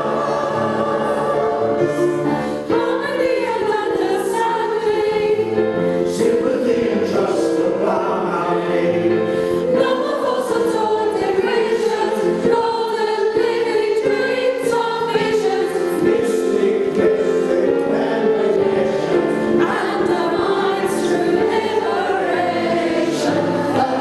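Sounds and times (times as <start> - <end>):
choir singing: 0.0 - 24.0.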